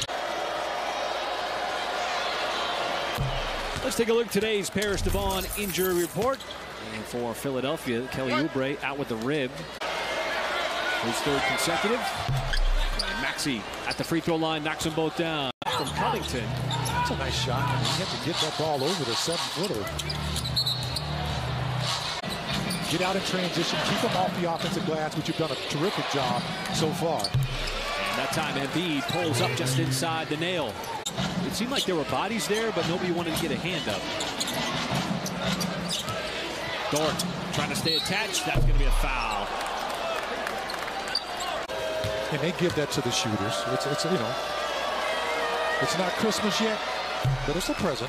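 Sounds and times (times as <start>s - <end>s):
crowd noise: 0.0s - 48.0s
shoe squeak: 12.3s - 13.2s, 19.6s - 21.1s, 34.2s - 36.2s, 37.8s - 38.5s.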